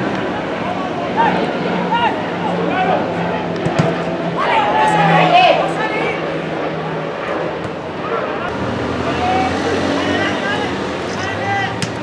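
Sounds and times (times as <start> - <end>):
vehicle engine humming: 8.5 - 12.0
distant players shouting: 9.0 - 12.0.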